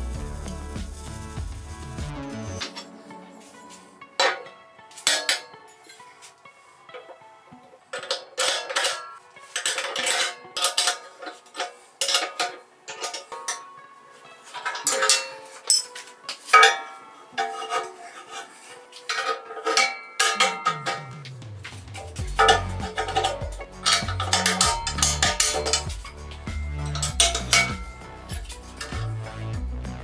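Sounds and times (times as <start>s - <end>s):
steel parts clanking: 4.2s - 6.1s, 7.9s - 13.8s, 14.5s - 29.2s
wrench on nuts: 22.1s - 29.1s.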